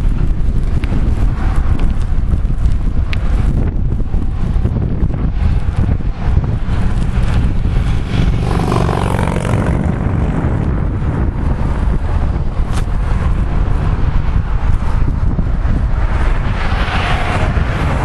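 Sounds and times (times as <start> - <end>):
wind rumbling on microphone: 0.0 - 18.0
car passing: 3.3 - 18.0.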